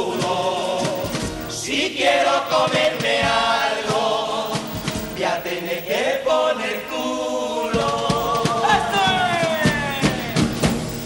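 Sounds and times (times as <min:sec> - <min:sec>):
drum beats: 0:00.0 - 0:06.1, 0:06.7 - 0:11.0
male chorus singing: 0:00.0 - 0:11.0.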